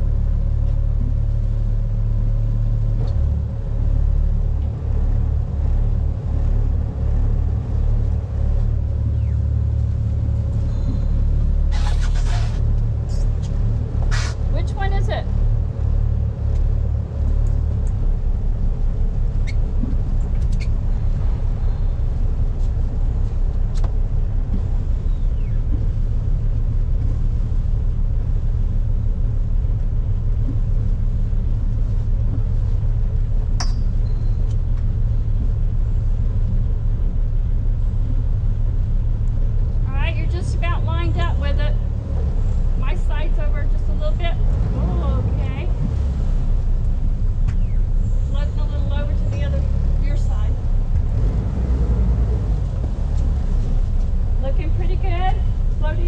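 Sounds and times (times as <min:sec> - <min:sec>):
boat engine rumbling: 0:00.0 - 0:56.0.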